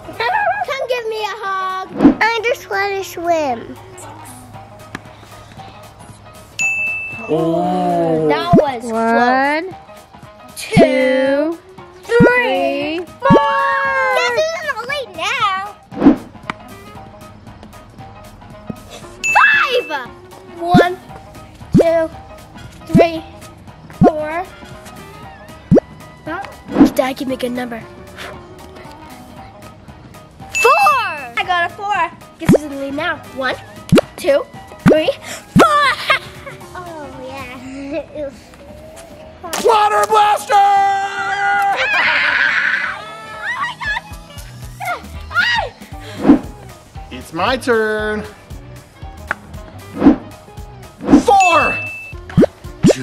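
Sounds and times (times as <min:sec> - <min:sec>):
background music: 0:00.0 - 0:53.0.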